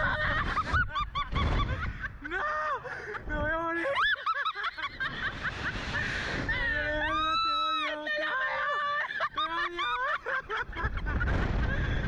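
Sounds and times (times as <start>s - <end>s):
people shrieking with laughter: 0.0s - 12.0s
wind rushing over microphone: 4.8s - 7.6s, 10.4s - 12.0s.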